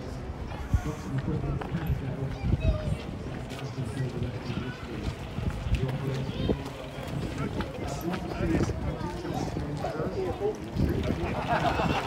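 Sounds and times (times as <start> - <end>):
crowd chatter: 0.0 - 12.0
footsteps on pavement: 0.4 - 11.3.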